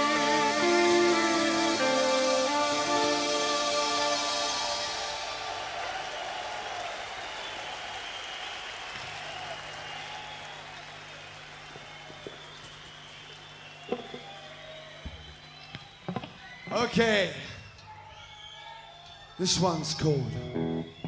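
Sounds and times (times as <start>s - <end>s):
crowd applauding and cheering: 0.0s - 21.0s.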